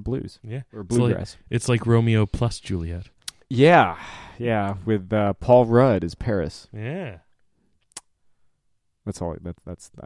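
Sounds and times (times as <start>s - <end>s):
person speaking: 0.0s - 7.4s.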